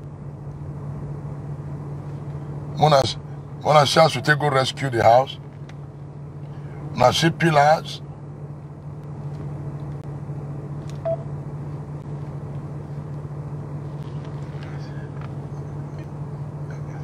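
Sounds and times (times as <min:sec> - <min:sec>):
low hum inside car cabin: 0:00.0 - 0:17.0
short beep: 0:11.0 - 0:11.3.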